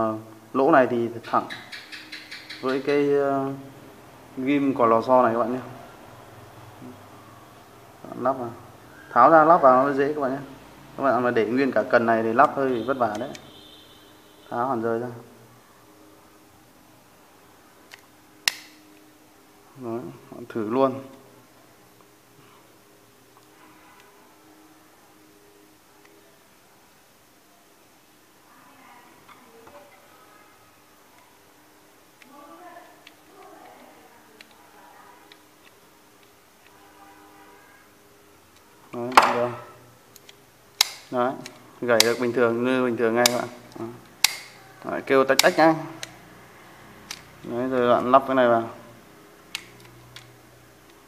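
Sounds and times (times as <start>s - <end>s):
reel bail arm snapping click: 44.2s - 44.6s.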